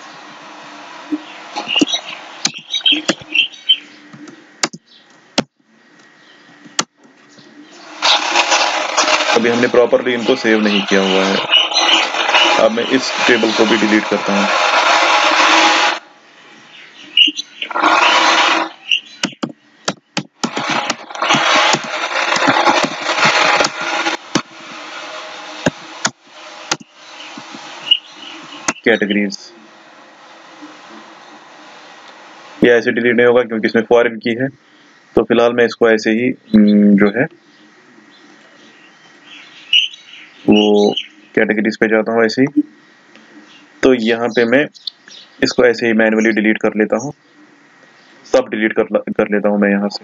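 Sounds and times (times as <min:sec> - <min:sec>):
loud rushing noise: 0:07.8 - 0:16.2, 0:20.4 - 0:28.8.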